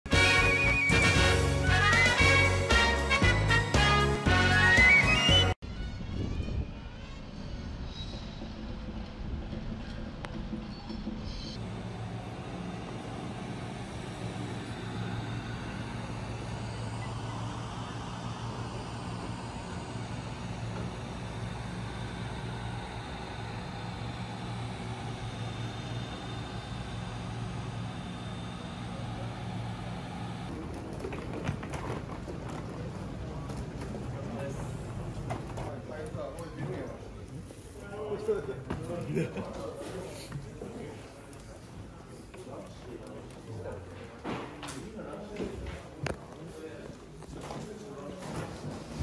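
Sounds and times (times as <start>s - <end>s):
low mechanical hum: 5.7s - 49.0s.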